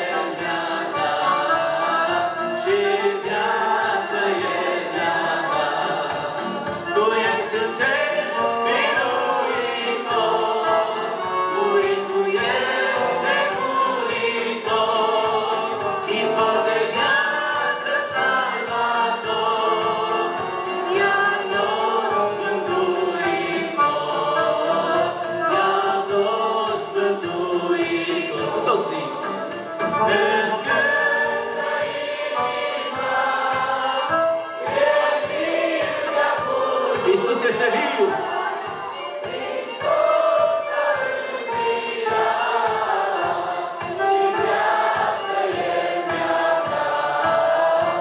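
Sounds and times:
amplified band accompaniment: 0.0 - 48.0
group singing a worship song: 0.0 - 48.0.

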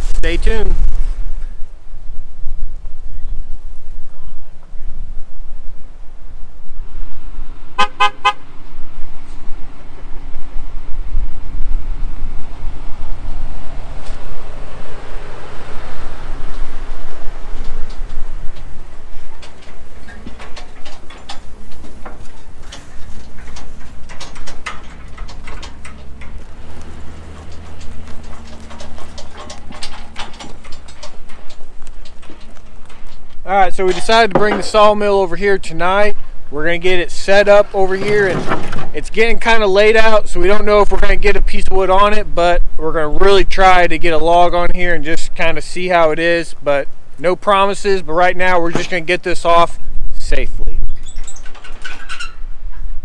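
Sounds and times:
trailer metal clanks and rattles: 0.0 - 1.6, 7.7 - 53.0
low engine hum: 0.0 - 40.4
wind rumbling on microphone: 0.0 - 53.0.

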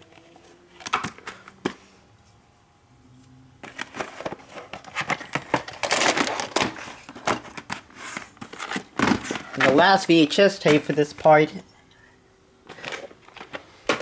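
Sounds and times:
plastic cases rustling and clattering: 0.0 - 1.8, 3.6 - 11.4, 12.6 - 14.0
plastic cases clicking: 0.1 - 1.8, 3.6 - 9.9, 12.7 - 14.0.

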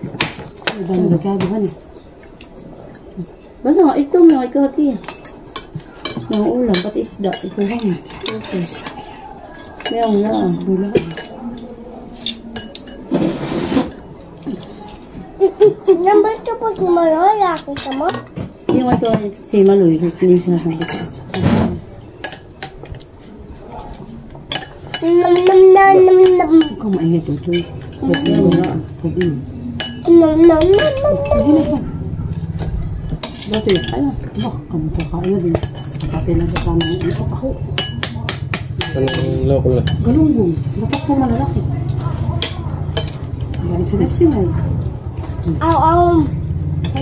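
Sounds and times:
people talking: 0.7 - 2.0, 2.6 - 22.0, 25.0 - 47.0
cutlery clinking on plates: 4.3 - 15.0, 17.5 - 19.2, 20.6 - 23.3, 23.9 - 40.0, 42.0 - 43.6, 46.8 - 47.0.

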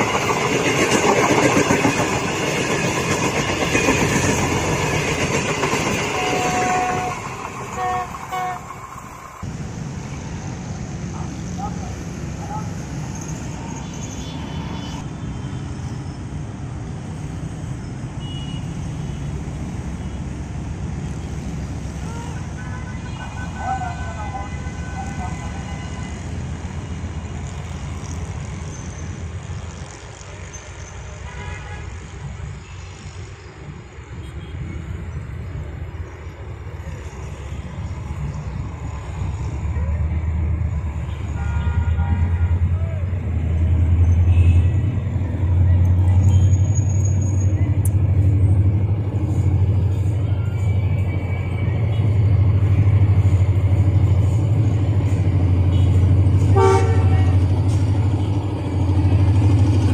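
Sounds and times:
diesel locomotive engine rumble: 0.0 - 59.9
road traffic hum: 0.0 - 59.9.

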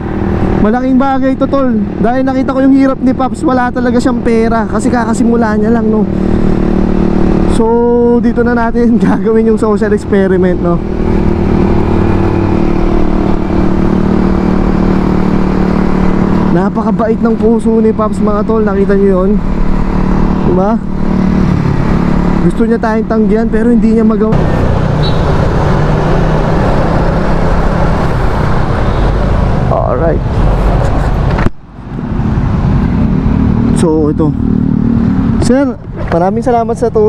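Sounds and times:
scooter engine humming: 0.0 - 35.6
road and wind rumble: 0.0 - 37.0.

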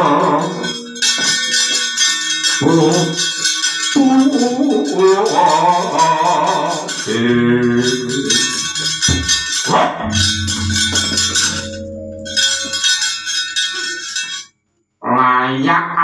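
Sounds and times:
gamelan with gongs ringing: 7.8 - 14.4.

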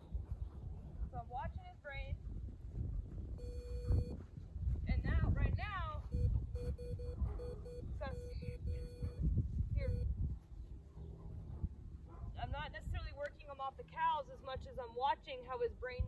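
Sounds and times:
wind on microphone: 0.0 - 13.5
short electronic beeps: 3.4 - 4.2, 6.1 - 9.2, 9.8 - 10.1.

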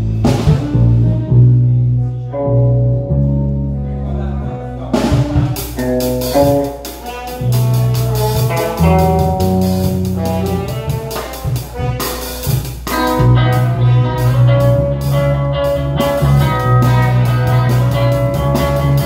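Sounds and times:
bass guitar: 0.0 - 19.0
drum kit: 0.0 - 19.0
electric guitar held lead notes: 0.0 - 19.0.

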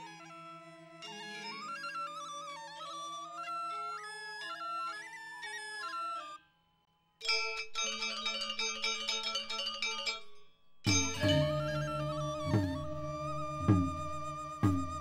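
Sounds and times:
bamboo flutes melody: 0.0 - 6.4, 10.9 - 15.0
metallophones struck rapidly: 10.9 - 12.9
gamelan ensemble playing: 10.9 - 15.0.

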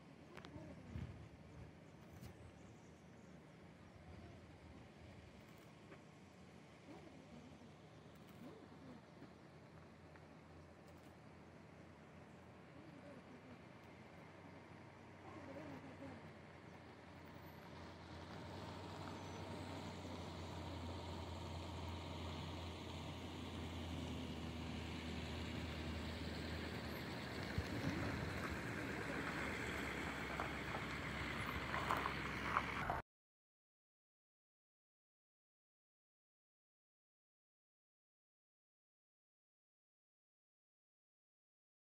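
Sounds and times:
vehicle engine and tyre noise: 0.0 - 33.0.

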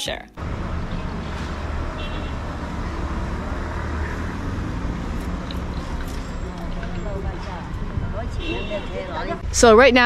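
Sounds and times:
traffic rumble: 0.4 - 10.0.

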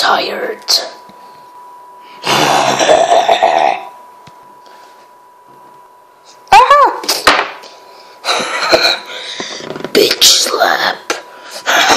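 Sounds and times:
person growling roar: 2.2 - 3.9.

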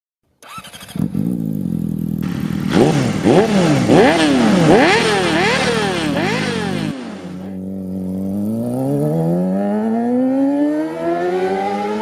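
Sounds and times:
motorcycle engine starting: 0.3 - 12.0
motorcycle engine idling: 0.4 - 8.5.

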